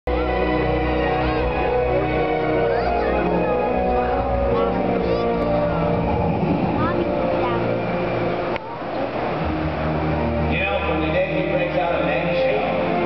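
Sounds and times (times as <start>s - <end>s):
sustained music chords: 0.1s - 13.0s
deep low rumble: 4.4s - 8.6s.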